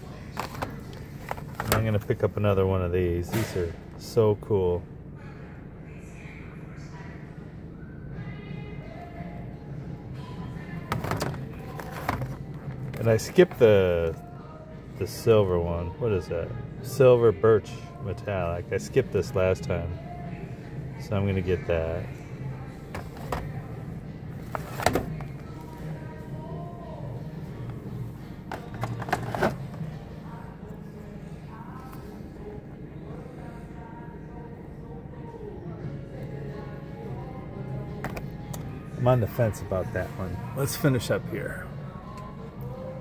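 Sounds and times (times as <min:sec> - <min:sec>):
low steady background hum: 0:00.0 - 0:43.0
plastic toy packages clacking: 0:28.5 - 0:29.7.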